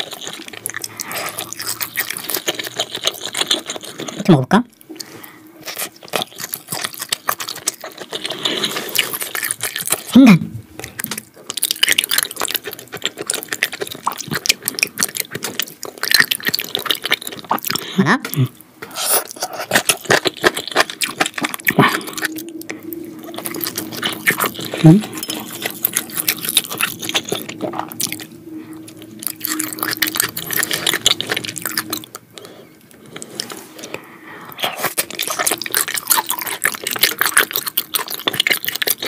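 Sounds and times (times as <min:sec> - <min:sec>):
wet chewing and mouth smacks: 0:00.0 - 0:04.2, 0:04.8 - 0:10.1, 0:10.8 - 0:39.0.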